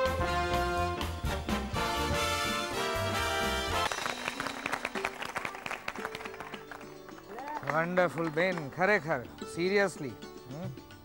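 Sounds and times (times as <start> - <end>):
brass jingle: 0.0 - 5.1
people clapping: 3.7 - 9.2.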